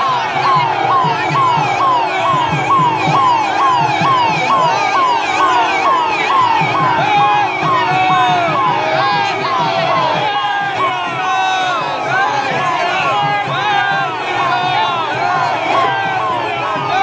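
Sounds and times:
electronic siren yelping: 0.0 - 17.0
low rhythmic thuds: 0.0 - 17.0.

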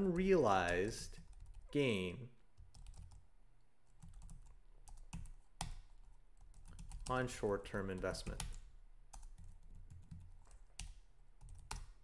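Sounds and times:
computer keyboard typing: 1.0 - 1.7, 2.6 - 3.2, 3.9 - 12.0.

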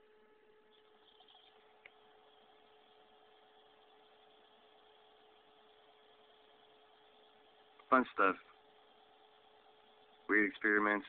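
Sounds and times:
faint steady hum: 0.0 - 11.0
low hiss: 0.0 - 11.0
small tick: 1.8 - 2.0.

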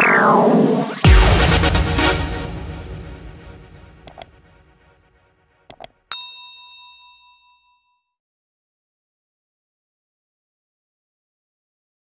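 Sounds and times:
electronic music: 4.1 - 4.3
quick clicks: 4.1 - 4.3, 5.7 - 6.0
notification bell ding: 5.7 - 8.0.

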